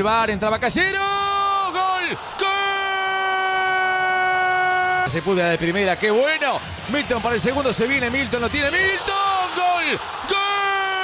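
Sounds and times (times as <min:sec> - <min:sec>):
commentator shouting goal: 0:00.5 - 0:11.0.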